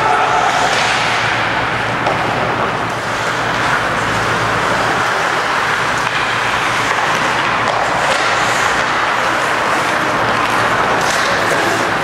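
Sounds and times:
skates scraping ice: 0:00.0 - 0:12.0.

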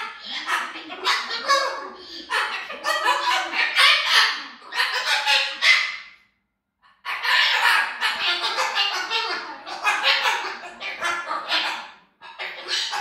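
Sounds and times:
cockatoo harsh calls: 0:00.0 - 0:13.0.

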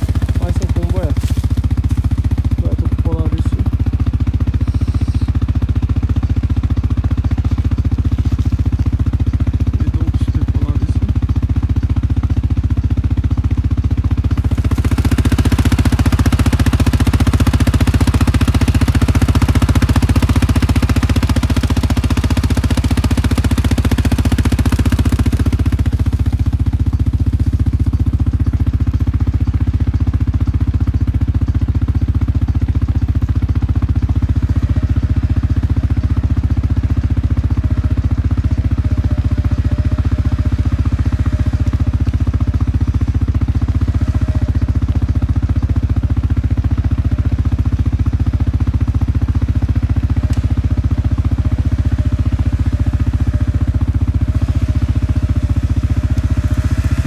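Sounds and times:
atv engine idling: 0:00.0 - 0:57.0.

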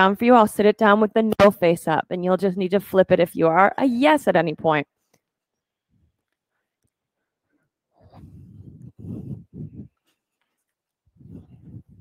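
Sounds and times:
breaths blowing across microphone: 0:08.0 - 0:10.2, 0:11.1 - 0:12.0.

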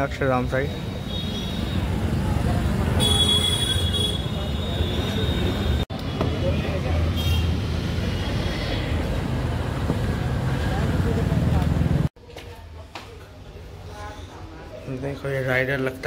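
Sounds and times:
traffic rumble: 0:00.2 - 0:12.2.

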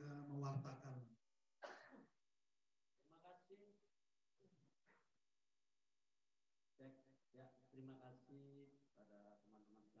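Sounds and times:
man clearing his throat: 0:01.6 - 0:02.2.

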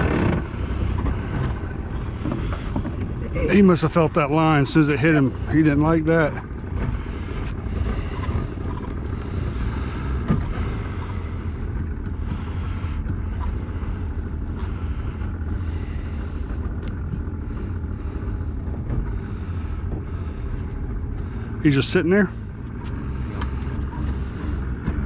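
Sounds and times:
boat motor droning: 0:00.0 - 0:25.0.

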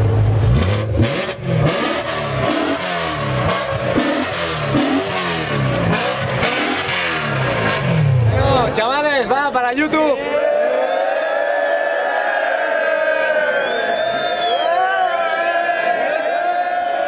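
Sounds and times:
car engine revving: 0:00.0 - 0:08.9
crowd noise: 0:00.0 - 0:17.0.

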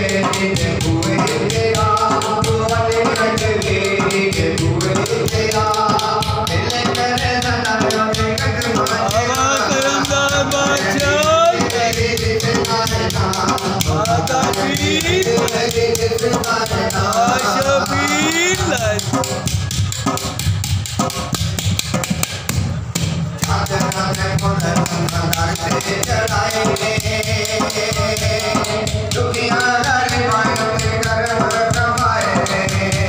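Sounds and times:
man singing into a microphone: 0:00.0 - 0:19.5, 0:23.4 - 0:33.0
hand drum rhythm: 0:00.0 - 0:33.0.

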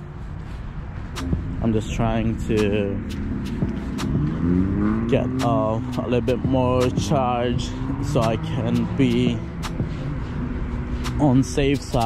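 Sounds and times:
car engine accelerating: 0:00.0 - 0:12.0
low rumble: 0:00.0 - 0:12.0.

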